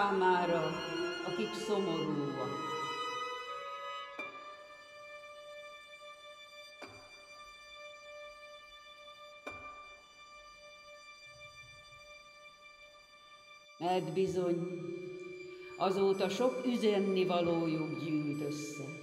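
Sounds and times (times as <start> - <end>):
violins sustained note: 0.0 - 9.2, 13.8 - 19.0.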